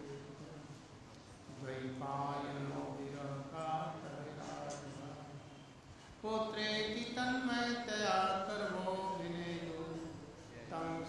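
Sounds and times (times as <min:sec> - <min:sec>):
man chanting into a microphone: 0:00.0 - 0:00.9, 0:01.5 - 0:05.6, 0:06.2 - 0:11.0.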